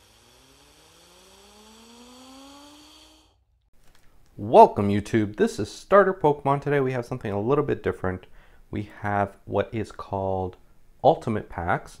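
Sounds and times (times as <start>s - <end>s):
hiss: 0.0s - 3.4s
rising synthetic tone: 0.0s - 3.5s.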